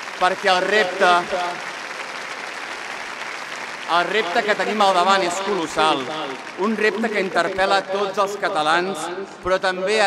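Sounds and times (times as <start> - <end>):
crowd applauding: 0.0 - 9.7
man speaking: 0.3 - 1.6, 3.9 - 10.0.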